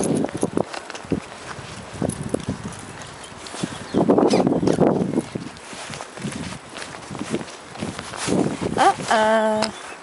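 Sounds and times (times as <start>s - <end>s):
footsteps on asphalt: 0.0s - 10.0s.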